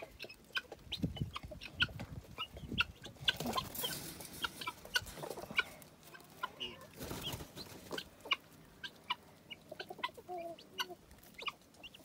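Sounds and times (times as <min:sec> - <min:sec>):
guinea fowl peeping: 0:00.0 - 0:12.0.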